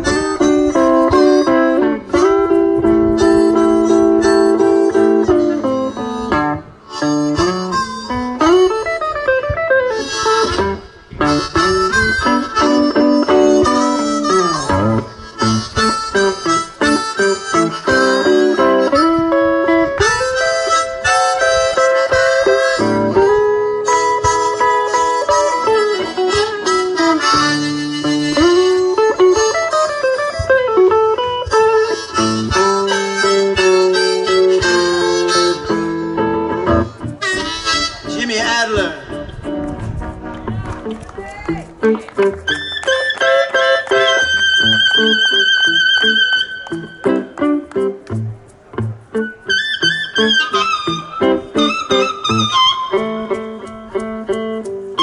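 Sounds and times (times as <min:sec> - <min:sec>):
electric guitar playing: 0:00.0 - 0:55.0
harmonica bending lead notes: 0:00.0 - 0:55.0.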